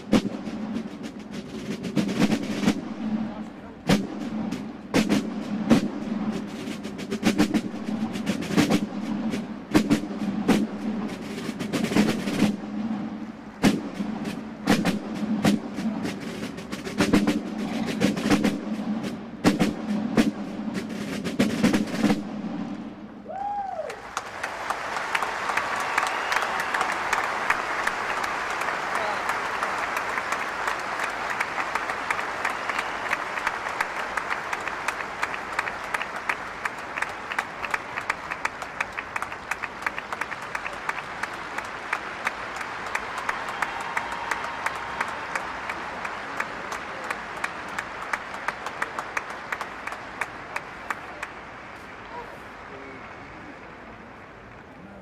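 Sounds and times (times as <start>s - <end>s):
drumming: 0.0s - 52.0s
audience applauding: 23.2s - 55.0s.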